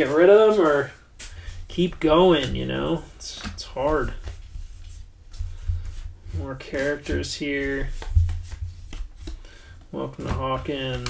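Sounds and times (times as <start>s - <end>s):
cards rustling and sliding: 0.0s - 11.0s.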